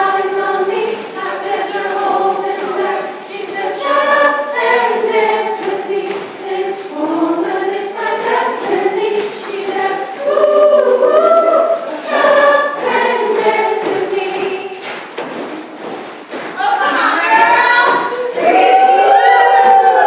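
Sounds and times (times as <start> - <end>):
group of voices singing: 0.0 - 15.0, 16.6 - 20.0.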